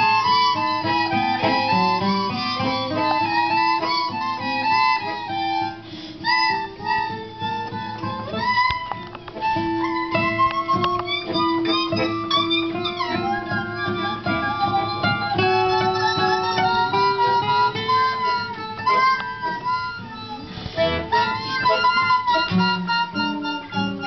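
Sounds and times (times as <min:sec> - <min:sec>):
accordion: 0:00.0 - 0:24.0
plucked acoustic guitar: 0:00.0 - 0:24.0.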